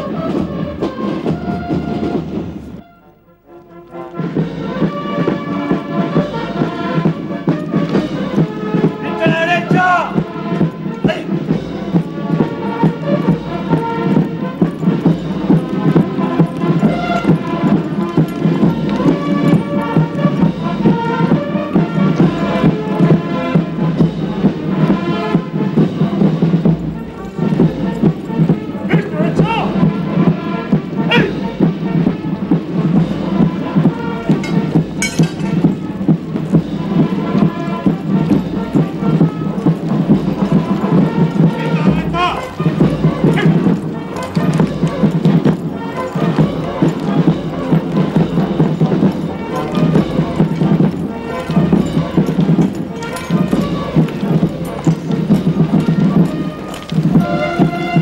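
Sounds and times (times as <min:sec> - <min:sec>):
military band playing a march: 0:00.0 - 0:58.0.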